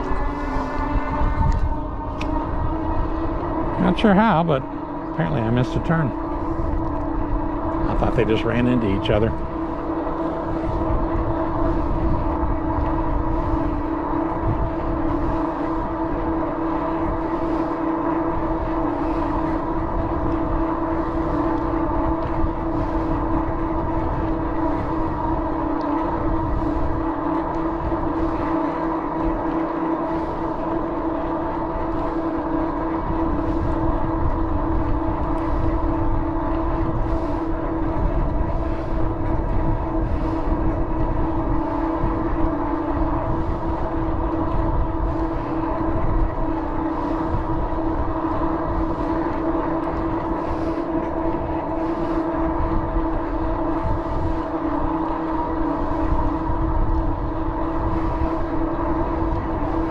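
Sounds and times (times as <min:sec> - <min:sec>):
bicycle whine of held tones: 0:00.0 - 0:59.9
wind rumble on microphone: 0:00.0 - 0:59.9.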